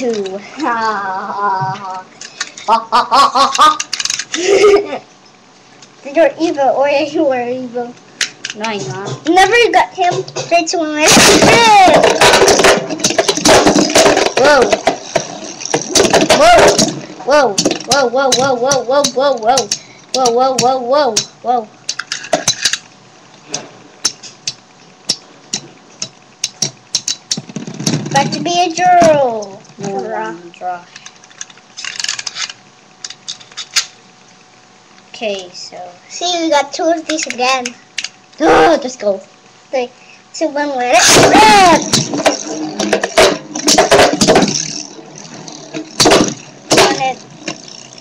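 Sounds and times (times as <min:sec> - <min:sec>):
faint whir: 0:00.0 - 0:48.0
spinning tops clashing: 0:11.0 - 0:22.9, 0:24.0 - 0:28.1, 0:41.0 - 0:48.0.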